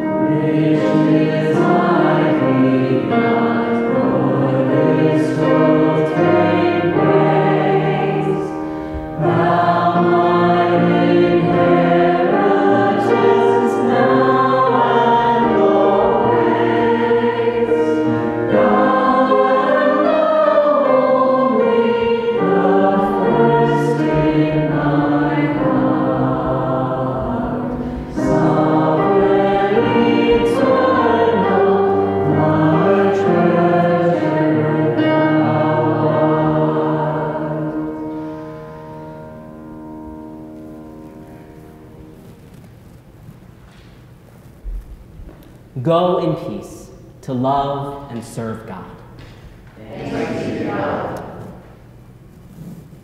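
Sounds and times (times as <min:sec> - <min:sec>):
congregation singing a hymn: 0:00.0 - 0:42.6, 0:47.4 - 0:52.0.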